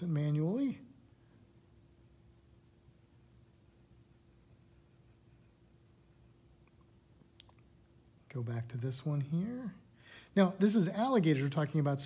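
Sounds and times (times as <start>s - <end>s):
low steady hum: 0.0s - 12.0s
stylus rubbing on glass screen: 1.5s - 6.6s.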